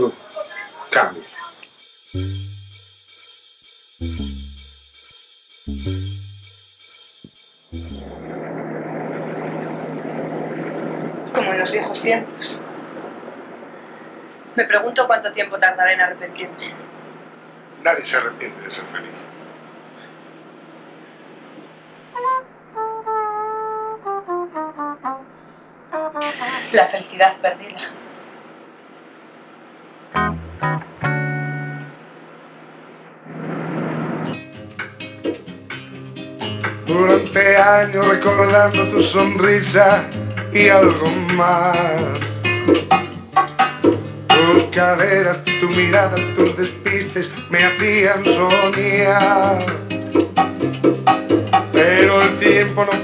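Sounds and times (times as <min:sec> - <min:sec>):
rushing noise: 0:07.5 - 0:14.7, 0:16.2 - 0:22.8, 0:31.9 - 0:38.7
car engine drone: 0:07.8 - 0:14.4
road noise: 0:07.8 - 0:22.9, 0:31.9 - 0:38.8.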